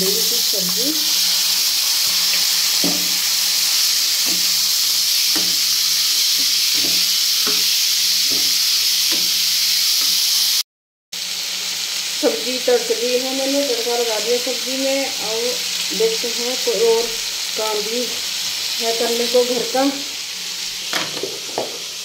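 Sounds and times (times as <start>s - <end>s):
vegetables sizzling in hot oil: 0.0s - 10.6s, 11.2s - 22.0s.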